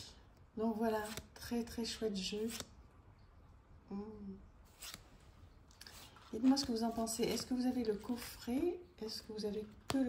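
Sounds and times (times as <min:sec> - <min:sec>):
cards sliding against each other: 0:01.0 - 0:01.4, 0:02.4 - 0:02.7, 0:04.7 - 0:07.5.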